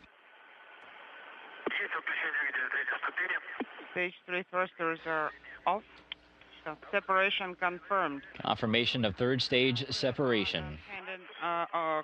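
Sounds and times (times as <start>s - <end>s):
radio channel hiss: 0.4s - 4.1s, 7.8s - 11.4s
voice talking over radio: 1.7s - 3.9s.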